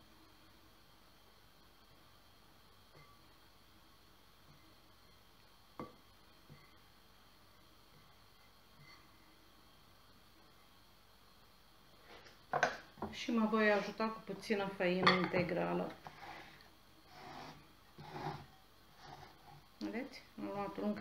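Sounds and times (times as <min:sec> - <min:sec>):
spatula stirring dough in bowl: 0:15.5 - 0:20.0.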